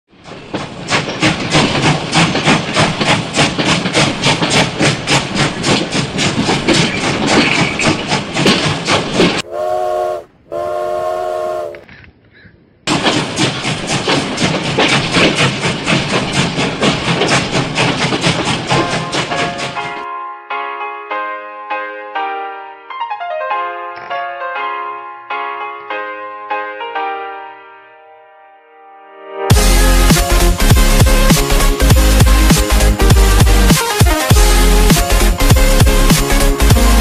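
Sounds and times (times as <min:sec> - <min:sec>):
steam locomotive chuffing: 0:00.1 - 0:11.8, 0:12.9 - 0:20.1, 0:29.5 - 0:37.0
steam whistle: 0:09.4 - 0:11.8.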